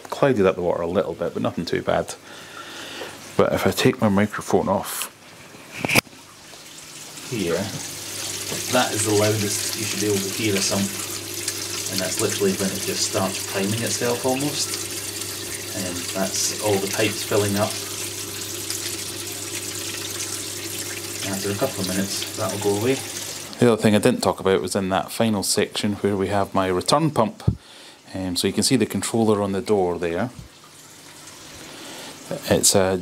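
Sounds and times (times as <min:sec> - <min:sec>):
water trickling and gurgling: 0:05.2 - 0:23.7, 0:30.2 - 0:32.6.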